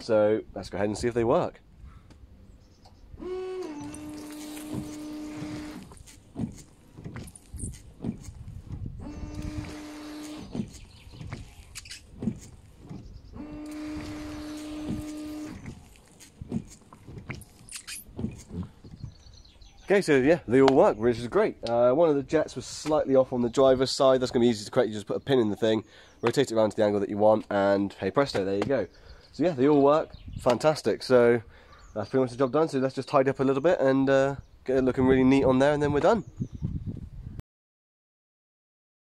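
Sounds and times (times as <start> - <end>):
washer pump motor whine: 3.1 - 19.3
washer fluid hissing: 3.2 - 19.3
light clicks and knocks: 3.8 - 19.3.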